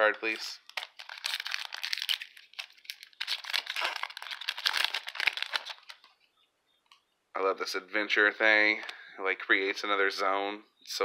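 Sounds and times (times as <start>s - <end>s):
foil wrapper tearing and crinkling: 0.3s - 6.1s.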